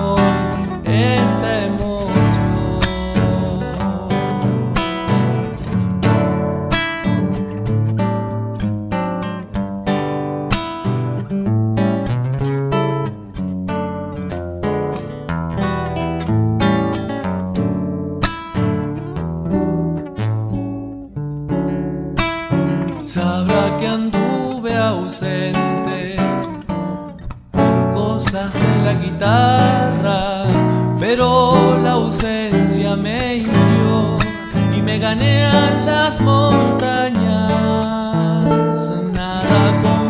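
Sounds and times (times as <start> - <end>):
classical guitar playing: 0.0 - 40.0.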